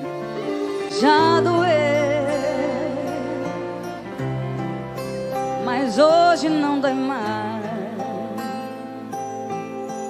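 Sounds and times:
woman singing: 0:00.7 - 0:03.9, 0:05.6 - 0:08.7.

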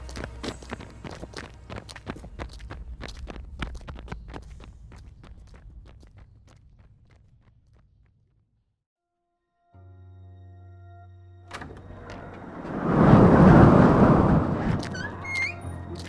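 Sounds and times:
running footsteps: 0:00.0 - 0:08.4
low rumble: 0:11.7 - 0:16.0.

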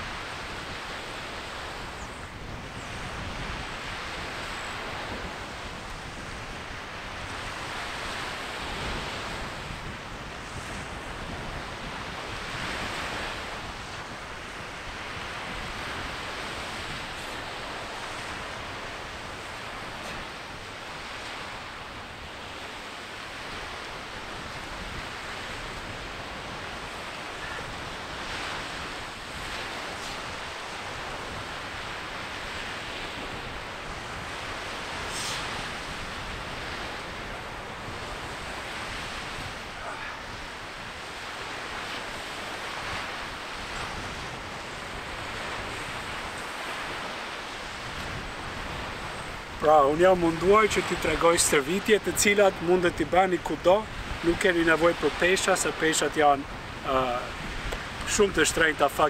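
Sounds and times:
wind on microphone: 0:00.0 - 0:58.9
sea surf washing ashore: 0:00.0 - 0:59.0.

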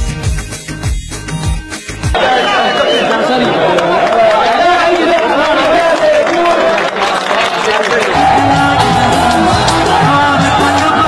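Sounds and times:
crowd chatter: 0:02.2 - 0:11.0.

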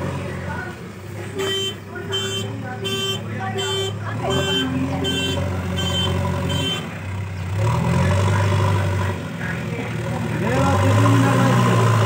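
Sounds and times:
diesel engine drone: 0:00.0 - 0:12.0.

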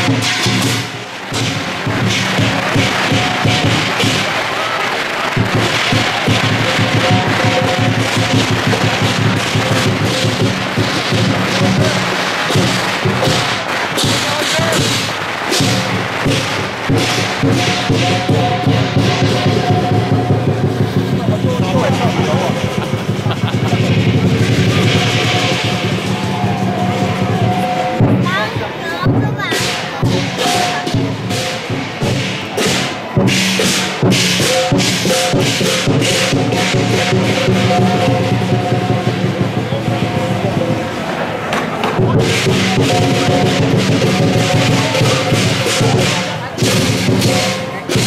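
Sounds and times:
crowd voices: 0:00.0 - 0:48.0
drum and cymbals beating: 0:00.0 - 0:48.0.

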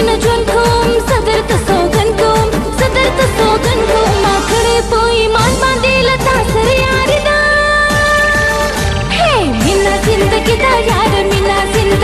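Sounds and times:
film song music: 0:00.0 - 0:12.0
woman singing: 0:00.0 - 0:12.0.

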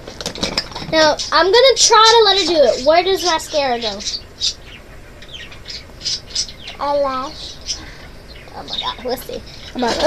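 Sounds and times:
small bird chirping: 0:00.9 - 0:10.0.

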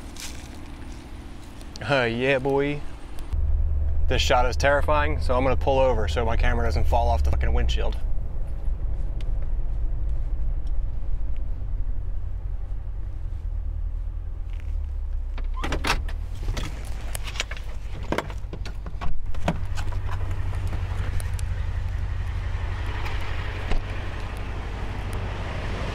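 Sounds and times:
parked car engine rumble: 0:00.0 - 0:25.9.

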